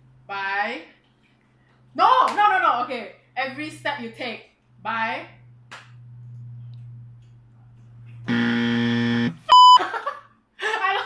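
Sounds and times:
wrong-answer buzzer: 8.3 - 9.8
high electronic beep: 9.5 - 9.8
laughter: 9.8 - 11.0.

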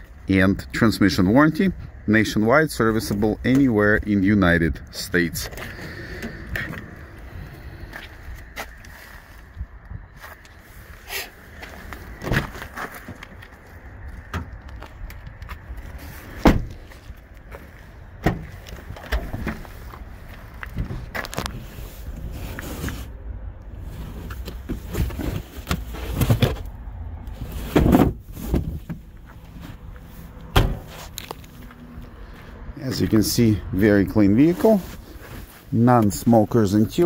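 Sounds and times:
car doors thumping shut: 16.4 - 16.8, 30.5 - 30.9.

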